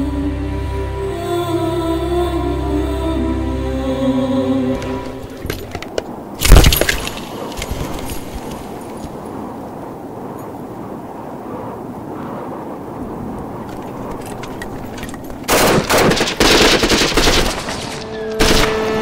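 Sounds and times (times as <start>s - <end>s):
machine-gun fire: 15.5s - 19.0s.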